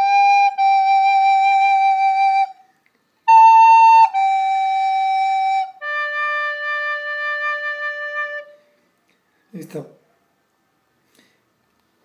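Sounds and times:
recorder playing slow notes: 0.0 - 8.6.

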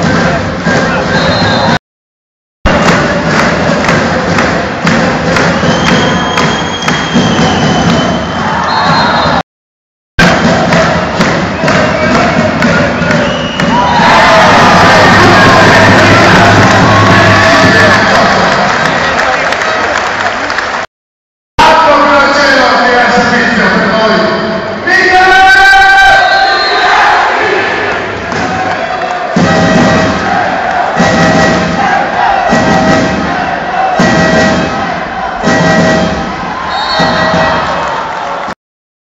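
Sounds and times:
music: 0.0 - 1.8, 2.7 - 9.4, 10.2 - 19.1, 29.3 - 37.9
crowd clapping rhythmically: 2.7 - 8.6, 10.2 - 20.9, 28.2 - 29.4, 30.2 - 31.1, 36.5 - 38.6
crowd cheering: 2.7 - 9.4, 10.2 - 20.9, 25.1 - 38.6.

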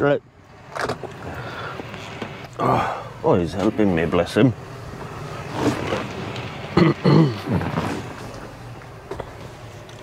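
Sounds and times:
steady background noise: 0.0 - 10.0
man talking: 2.6 - 4.6.

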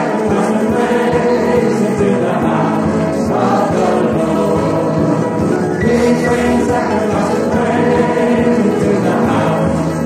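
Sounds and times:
choir singing gospel song: 0.0 - 10.0.

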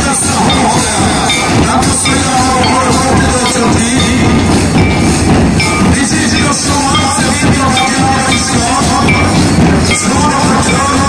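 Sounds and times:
crowd voices: 0.0 - 11.0
loud drumming: 0.0 - 11.0
metal cymbals clashing: 0.0 - 11.0.

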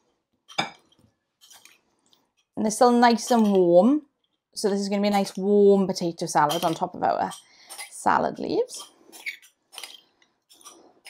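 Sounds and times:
metal spoon scraping glass bowl: 3.1 - 3.7, 6.4 - 11.0.

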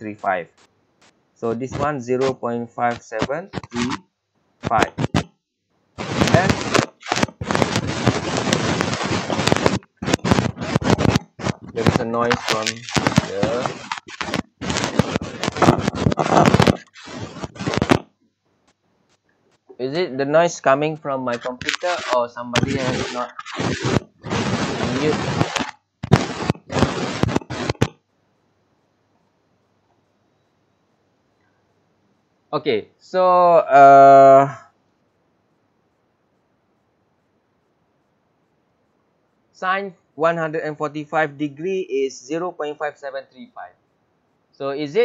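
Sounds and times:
rapid clicking noise through microphone: 0.0 - 4.0, 4.6 - 5.4, 6.0 - 19.8, 21.3 - 28.0.

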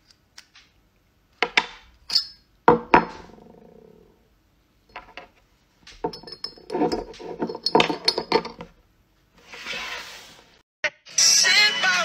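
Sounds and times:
scissors clinking against glass: 2.1 - 2.4.

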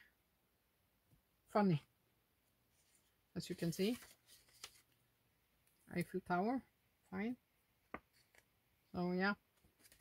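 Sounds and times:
paper pages turning: 2.7 - 5.0, 7.9 - 8.5, 9.5 - 10.0.

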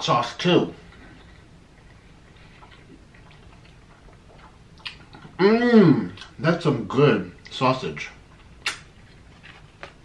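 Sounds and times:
room hum: 0.0 - 10.0
food being squeezed: 8.5 - 9.3.

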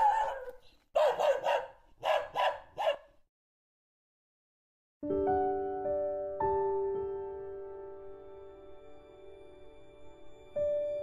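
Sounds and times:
dog barking: 0.0 - 3.2.

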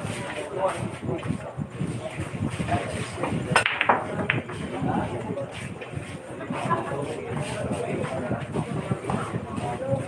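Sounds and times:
murmur of voices: 0.0 - 10.0
billiard balls clicking: 3.5 - 4.8.

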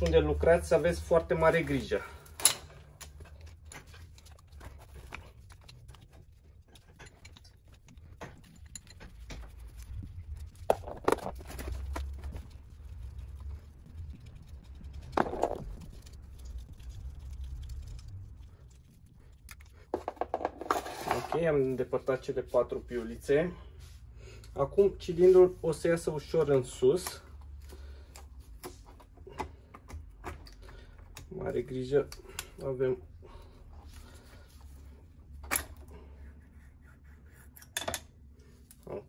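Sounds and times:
low rumble: 9.5 - 19.9.

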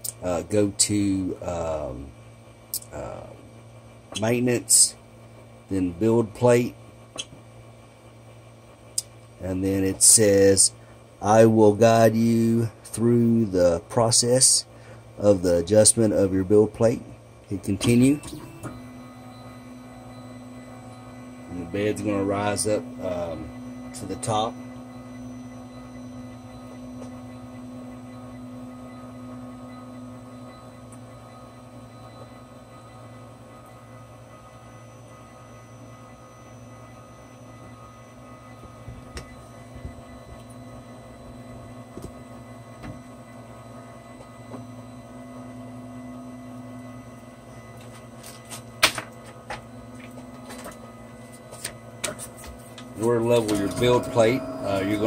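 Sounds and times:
stepper motor hum: 0.0 - 55.0.

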